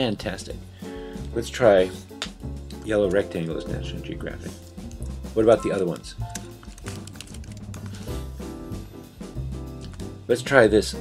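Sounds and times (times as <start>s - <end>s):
background music with bass line: 0.0s - 11.0s
computer keyboard typing: 5.0s - 8.1s.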